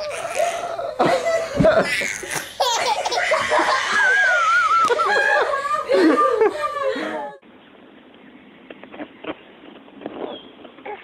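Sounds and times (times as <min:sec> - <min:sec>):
toddler laughing: 0:00.0 - 0:07.3.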